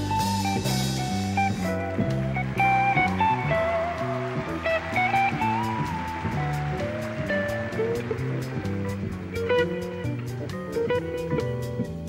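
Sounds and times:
bass notes: 0:00.0 - 0:12.0
drum cymbals keeping a beat: 0:00.0 - 0:12.0
electric guitars playing jazz: 0:00.0 - 0:12.0.

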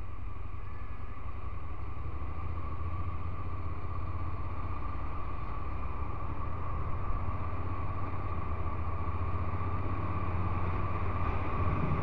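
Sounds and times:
wind rush on microphone: 0:11.2 - 0:12.0.

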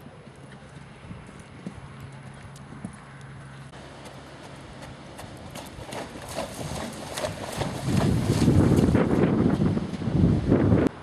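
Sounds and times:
horse hoofbeats cantering: 0:00.0 - 0:10.0.

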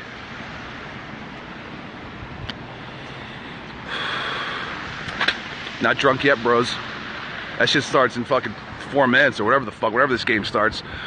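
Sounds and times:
street noise: 0:00.0 - 0:11.0
hissing breath into microphone: 0:02.9 - 0:04.9.

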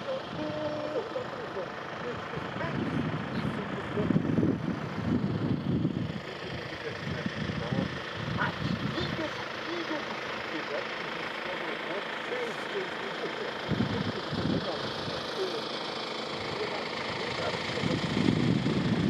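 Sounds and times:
indistinct voices talking: 0:00.0 - 0:19.0.

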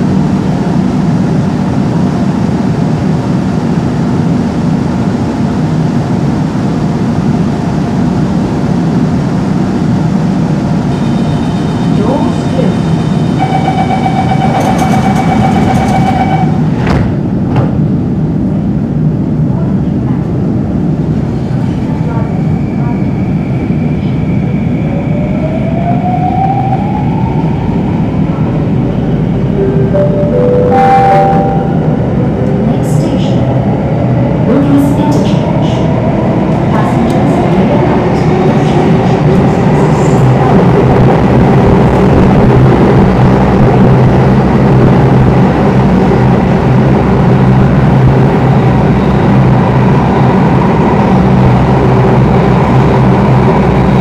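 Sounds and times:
train wheels rumbling on rail: 0:00.0 - 0:30.1, 0:31.4 - 0:54.0.

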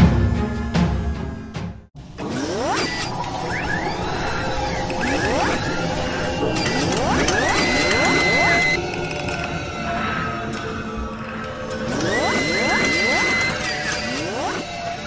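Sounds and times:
synthetic rising sweeps: 0:02.2 - 0:08.8, 0:11.9 - 0:14.9
steady synthetic tone: 0:02.2 - 0:09.0, 0:11.7 - 0:15.0
dense machine-like texture: 0:02.2 - 0:10.4, 0:11.4 - 0:15.0.

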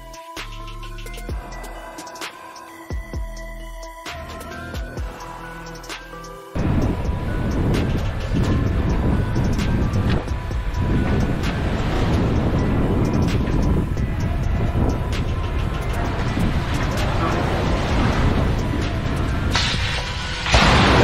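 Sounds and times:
wind rumble on microphone: 0:06.6 - 0:21.0.

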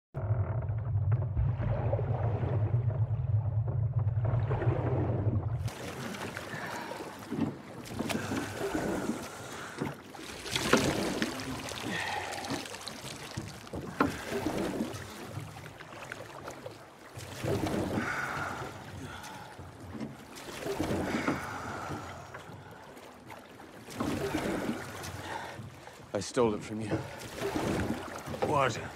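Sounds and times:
oars dipping and splashing: 0:01.1 - 0:28.9
rush of water: 0:04.2 - 0:28.9.

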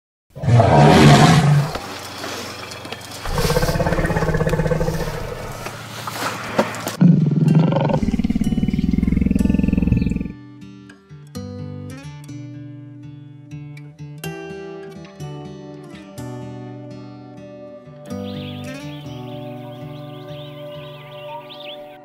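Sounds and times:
lion roaring: 0:00.4 - 0:01.9, 0:03.2 - 0:05.9, 0:07.0 - 0:10.4.

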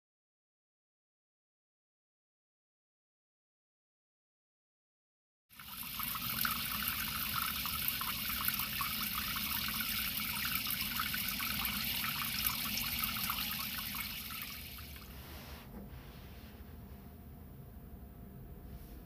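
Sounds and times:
tap water splashing into colander: 0:05.6 - 0:15.1.

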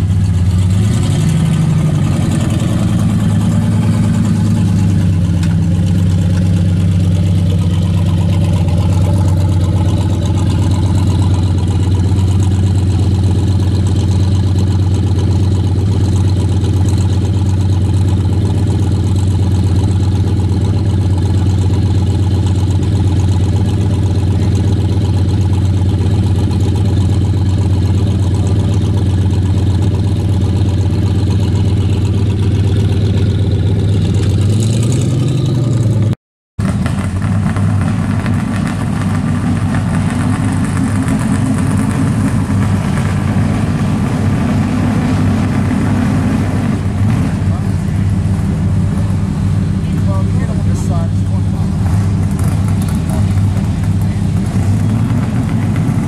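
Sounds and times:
car engine idling: 0:00.0 - 0:56.0
engine revving: 0:00.0 - 0:56.0
rough car engine passing: 0:00.0 - 0:56.0.

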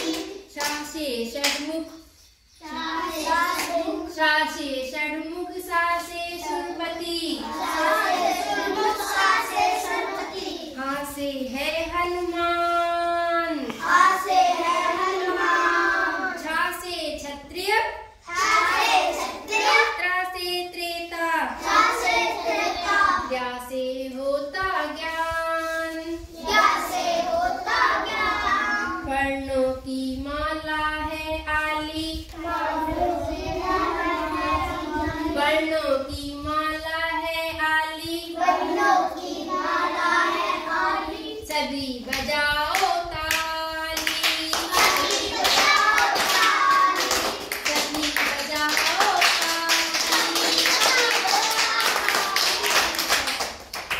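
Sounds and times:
children singing: 0:00.0 - 0:00.5, 0:02.6 - 0:04.1, 0:06.4 - 0:10.8, 0:13.6 - 0:16.4, 0:21.6 - 0:23.3, 0:26.2 - 0:29.1, 0:32.4 - 0:35.4, 0:38.4 - 0:41.5, 0:44.0 - 0:48.8
children clapping hands: 0:00.0 - 0:01.7, 0:03.5 - 0:03.8, 0:44.0 - 0:53.9.

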